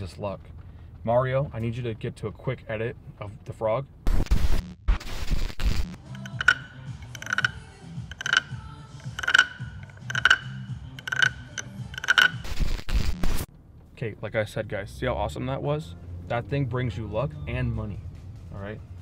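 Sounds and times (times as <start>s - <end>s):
wooden frog guiro croaks: 6.2s - 12.5s.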